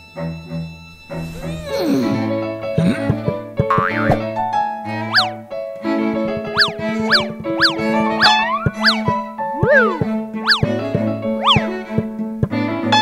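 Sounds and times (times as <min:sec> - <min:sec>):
playful cartoon music: 0:00.0 - 0:13.0
springy boing effects: 0:02.8 - 0:04.3, 0:05.1 - 0:05.3, 0:06.4 - 0:11.7.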